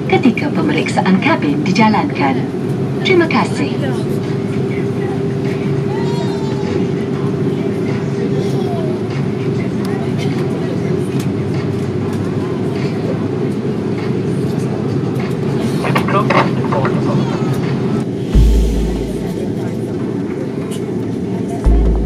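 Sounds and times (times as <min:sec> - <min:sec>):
aircraft cabin rumble: 0:18.0 - 0:20.5
steady hum tone: 0:18.2 - 0:19.8.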